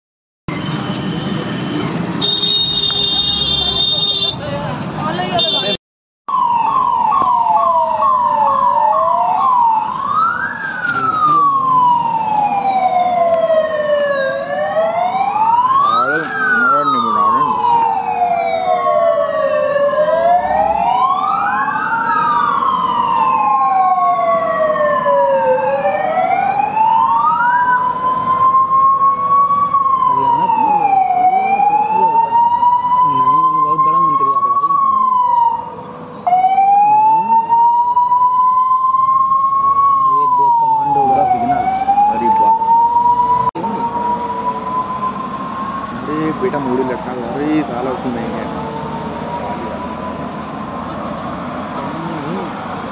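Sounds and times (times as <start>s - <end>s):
sirens wailing: 0.5s - 52.9s.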